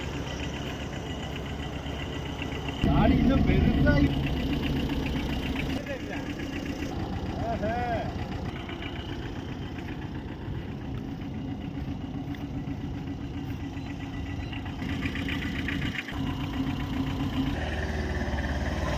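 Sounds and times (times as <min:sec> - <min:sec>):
truck engine idling: 0:00.0 - 0:18.9.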